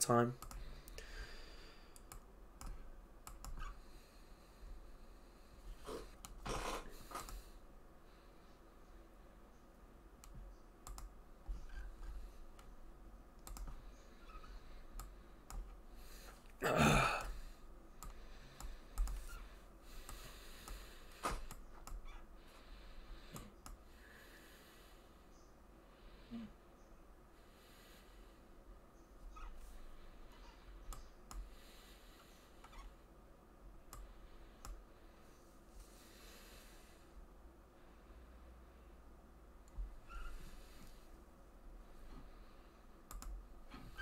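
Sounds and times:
computer keyboard and mouse clicking: 0.4 - 1.0, 1.9 - 3.7, 10.2 - 11.2, 13.4 - 13.8, 14.9 - 15.8, 18.0 - 19.4, 20.0 - 22.1, 43.1 - 43.4.

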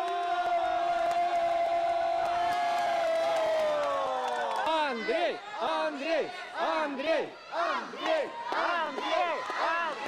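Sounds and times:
crowd noise in a hall: 0.0 - 10.0.

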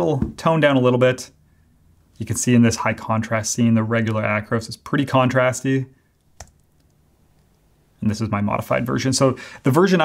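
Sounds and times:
computer click: 6.4 - 7.5.

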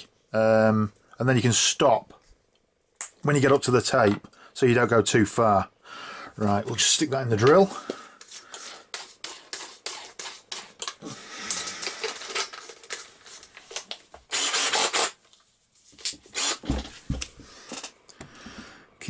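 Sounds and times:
drill chuck clicking and rattling: 14.3 - 15.2.

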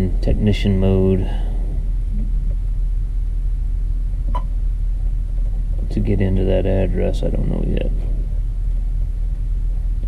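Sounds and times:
tractor cab rumble: 0.0 - 10.0.

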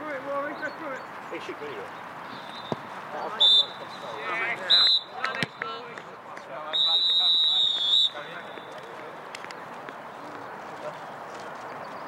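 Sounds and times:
referee's whistle blasts: 3.4 - 3.8, 4.6 - 5.2, 6.7 - 8.7.

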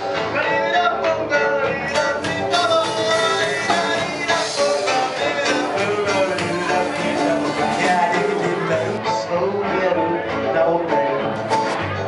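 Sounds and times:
person singing: 0.0 - 11.8
rock band playing live: 0.0 - 12.0.

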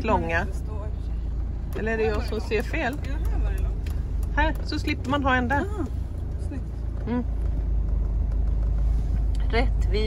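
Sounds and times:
vehicle engine rumbling: 0.0 - 10.0.

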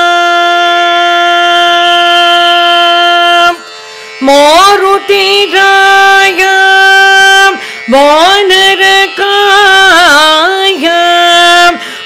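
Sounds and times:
woman singing long note: 0.0 - 3.6, 4.2 - 11.9.

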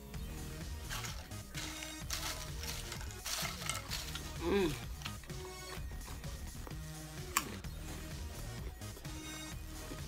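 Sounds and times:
television music: 0.0 - 10.0.

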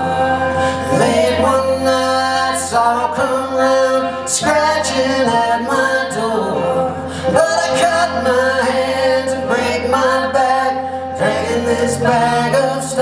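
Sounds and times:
acoustic guitar: 0.0 - 13.0
banjo: 0.0 - 13.0
people singing: 0.0 - 13.0
upright bass: 0.0 - 13.0.

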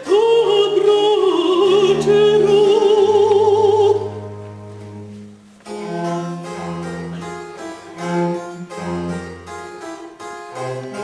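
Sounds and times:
harpsichord chords: 0.8 - 11.0
cello bass line: 1.5 - 11.0.

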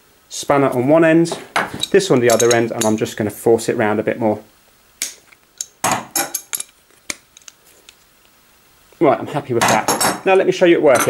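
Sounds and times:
metal spanners clinking: 1.7 - 3.0, 5.2 - 6.8.

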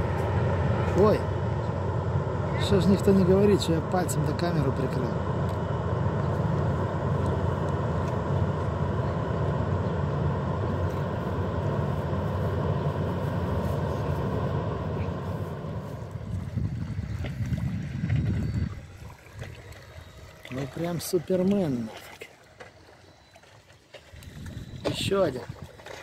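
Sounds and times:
ship engine drone: 0.0 - 26.0.

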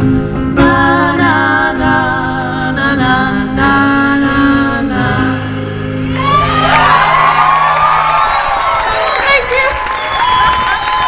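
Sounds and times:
audience cheering and whooping: 6.1 - 11.0.

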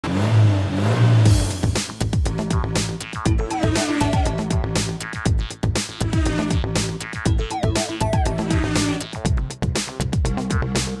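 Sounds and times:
car engine running: 0.0 - 9.2
electronic music: 1.7 - 11.0.

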